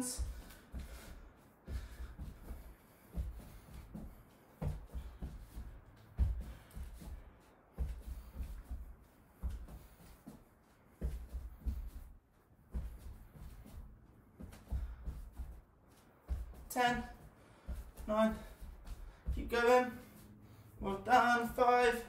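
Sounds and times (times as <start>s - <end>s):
feet shuffling on wooden floor: 0.0s - 22.0s.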